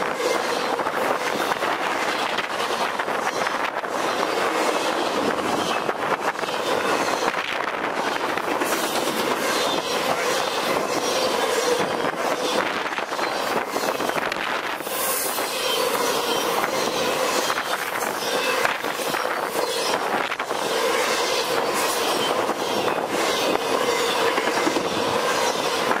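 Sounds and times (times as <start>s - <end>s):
train wheels rumbling and rattling: 0.0s - 26.0s.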